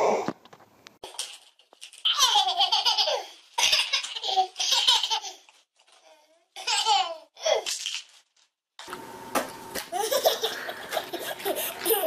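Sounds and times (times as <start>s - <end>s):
toddler laughing: 2.1s - 5.5s, 6.6s - 7.6s, 9.9s - 12.0s.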